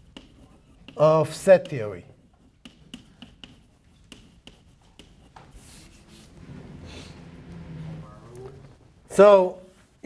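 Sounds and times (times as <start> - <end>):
chalk tapping on blackboard: 0.0 - 6.4
chalk scraping on blackboard: 0.0 - 8.1.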